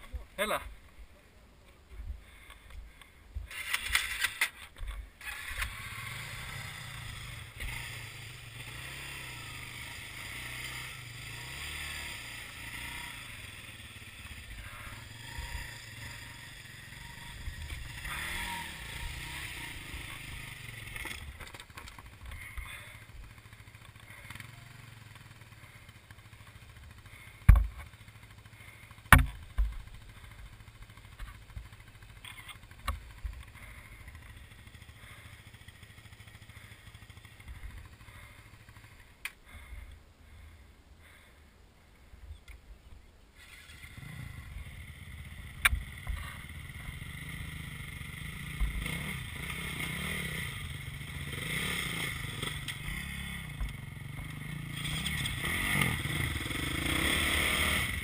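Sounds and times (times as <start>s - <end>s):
dirt bike engine at low revs: 1.7s - 58.0s
sharp knocks: 27.5s - 27.9s, 29.1s - 29.7s.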